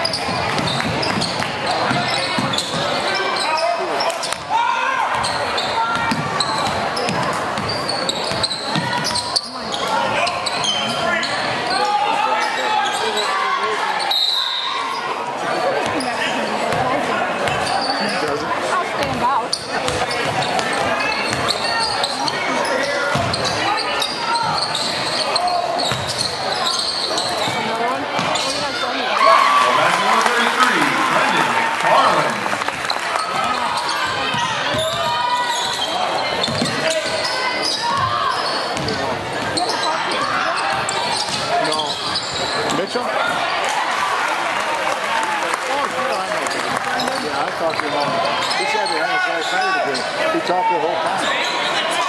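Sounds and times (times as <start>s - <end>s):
spectators talking: 0.0s - 52.0s.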